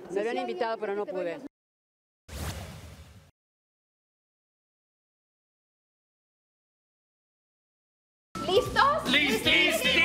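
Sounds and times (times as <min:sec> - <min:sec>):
transition swoosh: 0:02.3 - 0:03.3.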